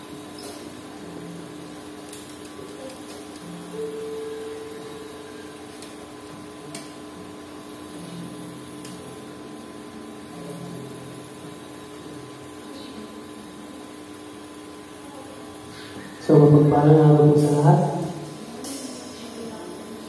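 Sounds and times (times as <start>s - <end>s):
sound system hum: 0.0s - 20.0s.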